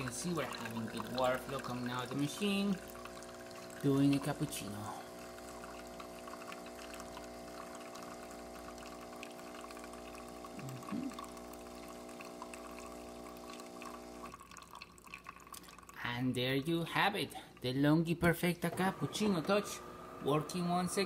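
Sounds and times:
espresso machine pump humming: 0.0 - 16.0, 18.6 - 21.0.

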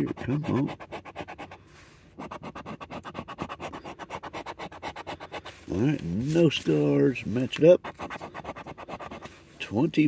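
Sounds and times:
coin scratching lottery ticket: 0.0 - 1.6, 2.2 - 5.6, 7.7 - 9.3.

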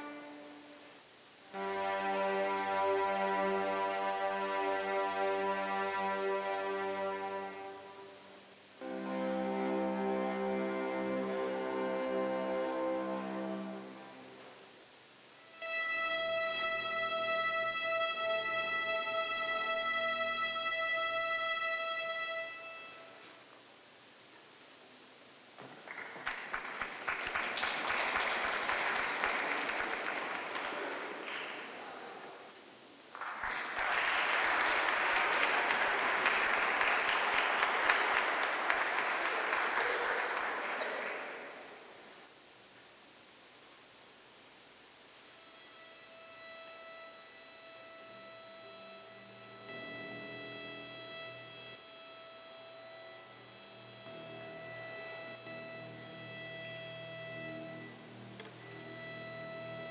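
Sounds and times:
string orchestra held note: 0.0 - 0.8, 1.5 - 14.6, 33.8 - 42.0
string orchestra playing softly: 0.0 - 23.5, 34.2 - 42.2, 45.1 - 59.9.

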